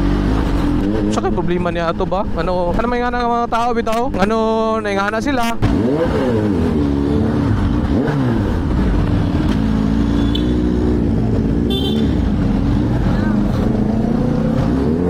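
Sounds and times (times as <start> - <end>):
motorcycle engine at low revs: 0.0 - 1.5, 5.4 - 15.0.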